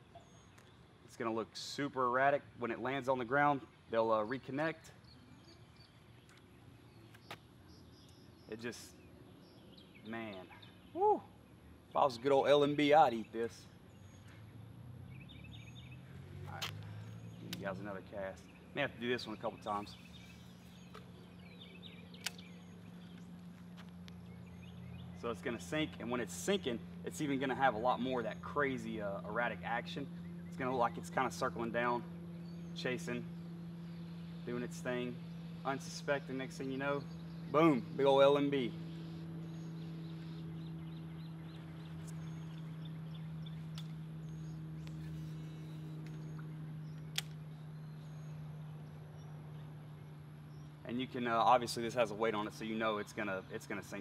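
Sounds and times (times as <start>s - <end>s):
faint bird chirps: 0.0s - 0.9s
birds chirping: 0.0s - 54.0s
steady low hum: 0.0s - 54.0s
sharp click: 17.4s - 17.7s, 22.2s - 22.5s, 47.0s - 47.4s.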